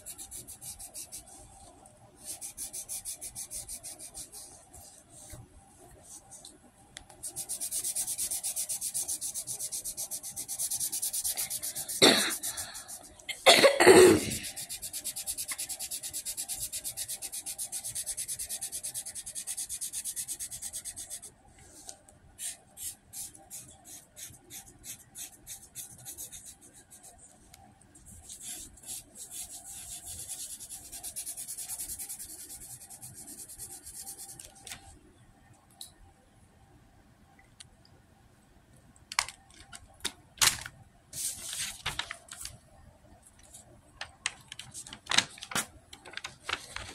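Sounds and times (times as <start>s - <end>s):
person coughing: 11.9s - 12.6s, 13.3s - 14.5s.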